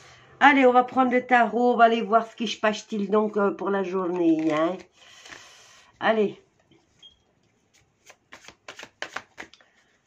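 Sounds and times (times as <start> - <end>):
cards being shuffled: 4.0 - 5.5, 7.6 - 10.0.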